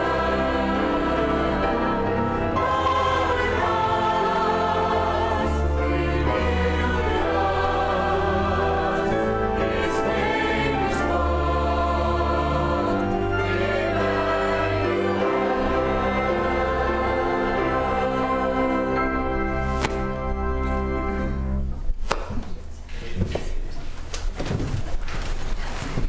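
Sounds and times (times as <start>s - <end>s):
choir singing: 0.0s - 21.3s
string ensemble: 0.0s - 21.8s.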